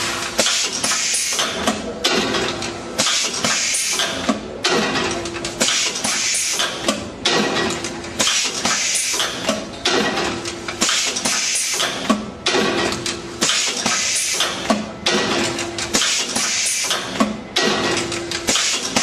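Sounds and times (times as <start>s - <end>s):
blind machine clatter and hiss: 0.0s - 19.0s
steady machine hum: 0.0s - 19.0s.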